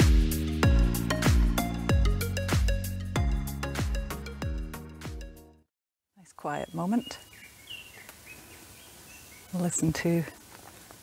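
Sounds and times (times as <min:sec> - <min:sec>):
faint steady bush hiss: 0:06.2 - 0:11.0
birds whistling calls: 0:06.6 - 0:09.8.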